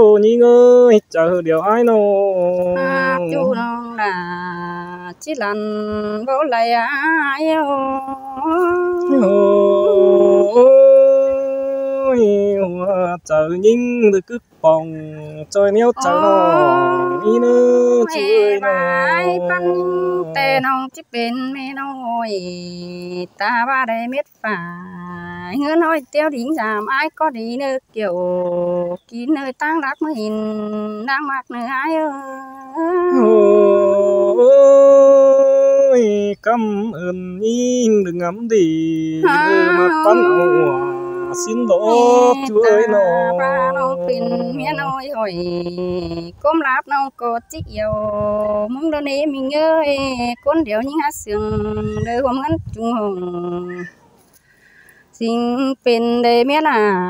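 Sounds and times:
person singing unaccompanied: 0:00.0 - 0:57.0.

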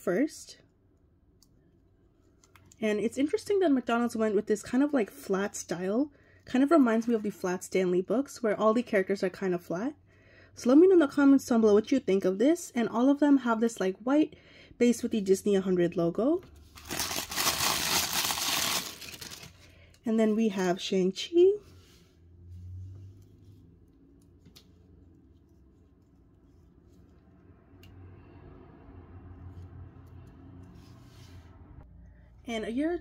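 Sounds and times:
paper wrapping crinkling: 0:16.8 - 0:19.7.

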